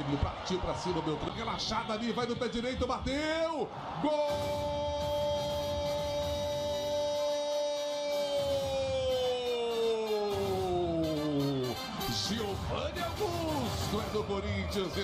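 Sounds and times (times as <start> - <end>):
stadium noise: 0.0 - 15.0
commentator's drawn-out goal cry: 3.2 - 15.0.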